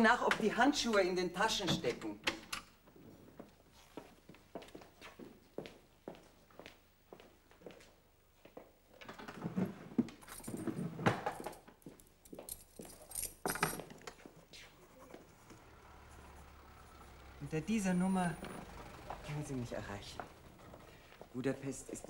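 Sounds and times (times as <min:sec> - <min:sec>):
small objects clinking: 0:10.2 - 0:14.2.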